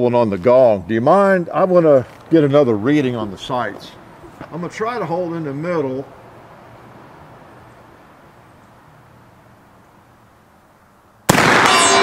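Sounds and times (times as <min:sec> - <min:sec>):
rifle shot: 0:11.3 - 0:12.0
steel gong ringing: 0:11.6 - 0:12.0.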